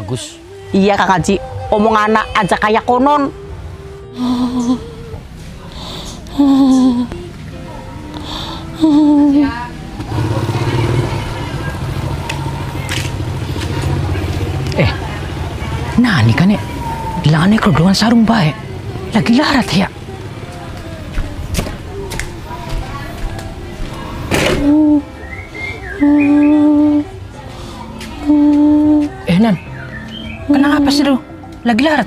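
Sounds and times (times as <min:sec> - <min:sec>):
engine running with low hum: 0:03.0 - 0:29.3.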